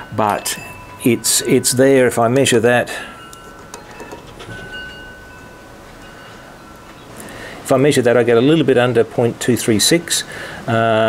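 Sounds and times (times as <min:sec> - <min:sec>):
faint steady high tone: 0:00.0 - 0:07.1.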